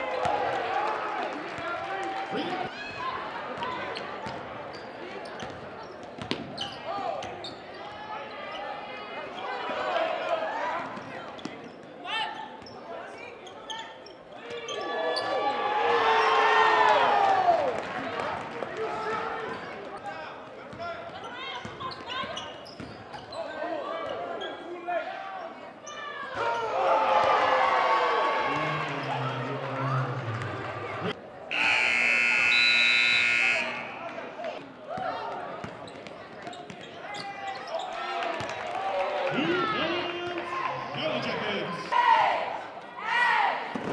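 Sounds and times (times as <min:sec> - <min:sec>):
crowd chatter: 0:00.0 - 0:43.9
sneakers squeaking: 0:02.8 - 0:09.6, 0:10.8 - 0:15.4, 0:20.7 - 0:24.8, 0:34.9 - 0:38.0
scoreboard buzzer: 0:31.5 - 0:34.1.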